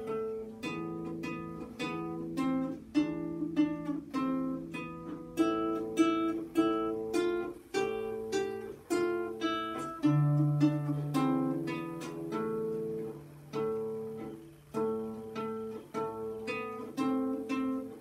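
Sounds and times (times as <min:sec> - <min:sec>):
fingerstyle classical guitar: 0:00.0 - 0:18.0.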